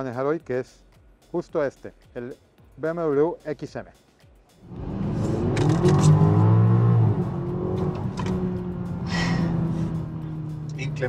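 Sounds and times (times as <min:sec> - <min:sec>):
car engine accelerating: 0:04.6 - 0:11.0.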